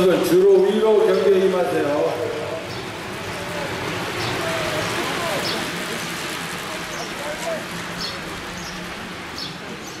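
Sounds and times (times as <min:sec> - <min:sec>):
outdoor background hiss: 0:00.0 - 0:10.0
small birds chirping: 0:00.4 - 0:10.0.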